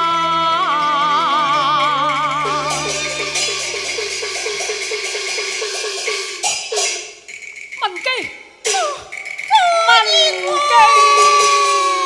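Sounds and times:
person singing: 0.0s - 4.6s, 8.7s - 12.0s
fast gong roll: 2.0s - 6.3s.

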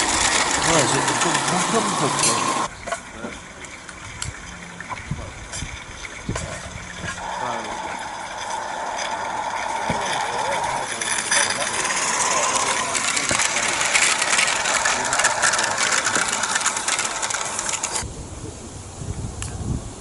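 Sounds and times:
train wheels clattering on rails: 0.0s - 3.1s, 6.4s - 18.0s.

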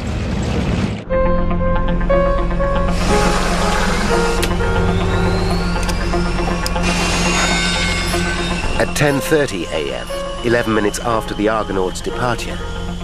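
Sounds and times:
background music: 1.0s - 13.0s
airliner engine with rising whine: 1.8s - 13.0s.

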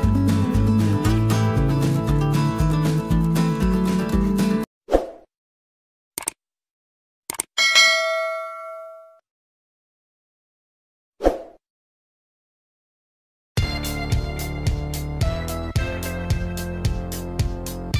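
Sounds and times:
background music: 0.0s - 4.7s, 13.6s - 17.9s
short clicks: 6.2s - 6.4s, 7.3s - 7.5s
notification bell ding: 7.6s - 9.2s.

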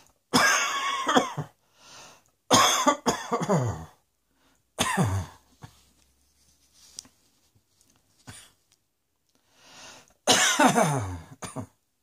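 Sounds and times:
person coughing: 0.3s - 1.6s, 2.5s - 4.0s, 4.8s - 5.8s, 8.2s - 8.6s, 10.3s - 11.8s
intake of breath: 1.6s - 2.3s, 9.4s - 10.2s.

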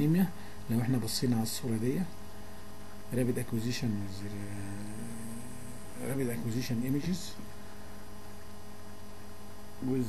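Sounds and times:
electrical mains hum: 0.0s - 10.0s
recording hiss: 0.0s - 10.0s
man's voice: 3.2s - 7.4s.

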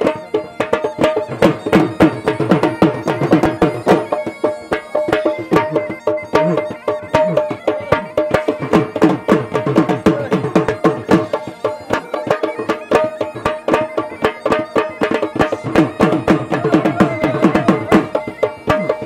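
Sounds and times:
dhol drum beating: 0.0s - 19.0s
held pitched tone: 0.0s - 19.0s.

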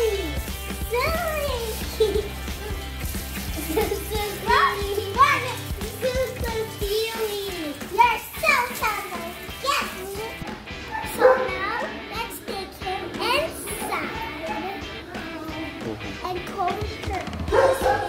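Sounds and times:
background music with bass line: 0.0s - 18.0s
children squealing and exclaiming: 0.0s - 18.0s.

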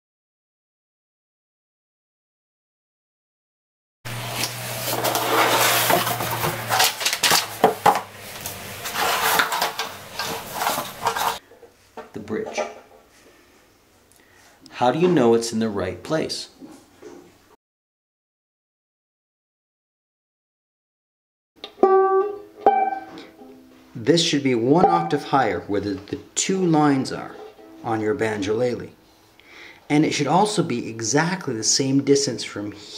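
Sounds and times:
banjolele strings plucked: 21.6s - 23.7s, 24.6s - 25.3s.

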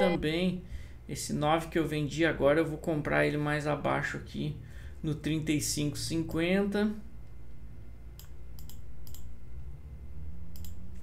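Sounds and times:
faint low room hum: 0.0s - 11.0s
computer mouse clicking: 8.2s - 9.3s, 10.5s - 11.0s.

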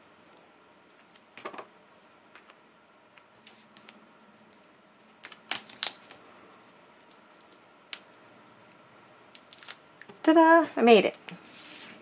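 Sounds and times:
tape and paper handled: 2.4s - 6.2s, 9.3s - 10.2s.

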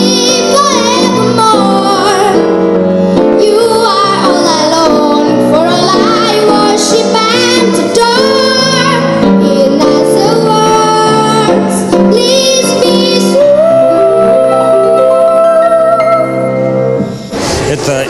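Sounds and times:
girl singing jazz song: 0.0s - 2.5s, 3.4s - 16.4s
piano accompaniment: 0.0s - 17.3s.

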